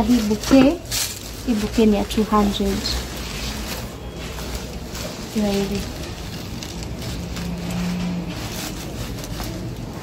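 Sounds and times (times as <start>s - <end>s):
artificial flowers rustling: 0.0s - 10.0s.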